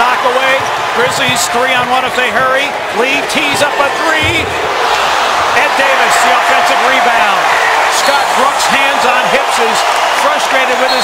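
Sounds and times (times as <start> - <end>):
arena crowd noise: 0.0 - 11.0
basketball bouncing: 0.5 - 2.5, 3.3 - 4.8.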